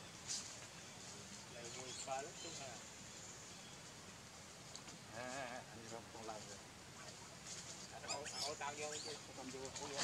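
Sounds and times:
monkey quavering cry: 8.0s - 9.1s.

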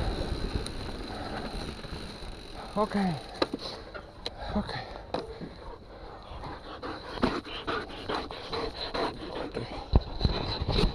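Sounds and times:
dog panting hard: 5.7s - 10.7s.

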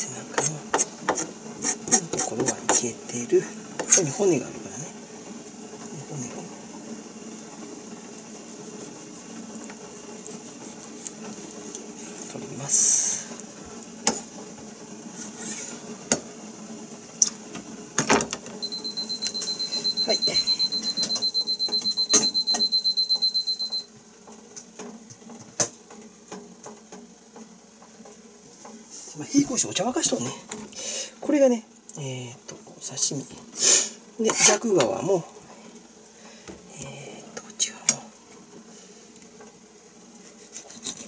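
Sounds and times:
appliance high electronic beeps: 18.6s - 23.9s
knife scraping: 40.3s - 41.0s.

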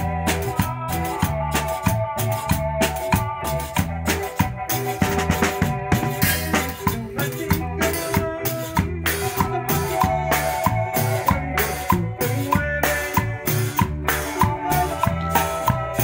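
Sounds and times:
bass: 0.0s - 16.0s
drum kit: 0.0s - 16.0s
electric guitar: 0.0s - 16.0s.

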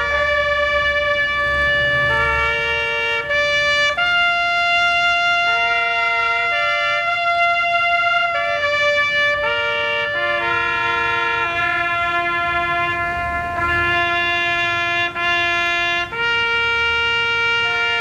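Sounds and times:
brass instrument long notes: 0.0s - 18.0s.

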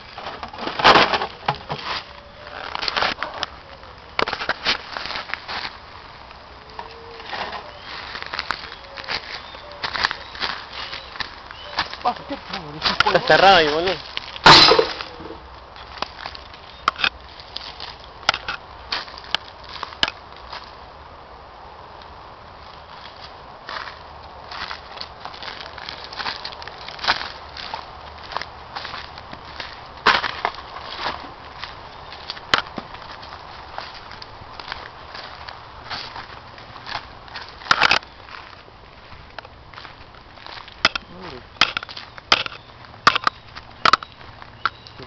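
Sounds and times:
footsteps crunching dry leaves: 0.0s - 21.1s, 22.2s - 45.0s.

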